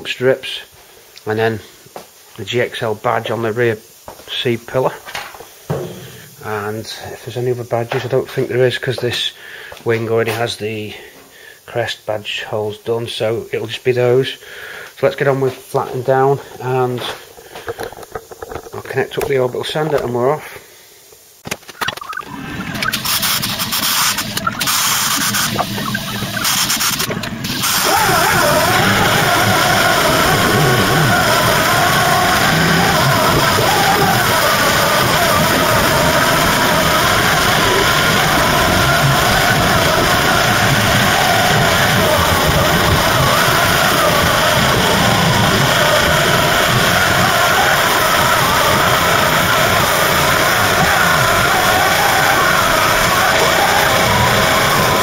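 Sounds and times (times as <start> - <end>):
orbital sander whirring: 22.3 - 55.0.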